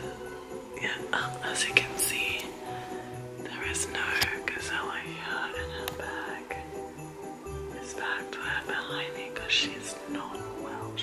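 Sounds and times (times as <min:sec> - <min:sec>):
background music: 0:00.0 - 0:11.0
woman whispering: 0:00.8 - 0:02.6.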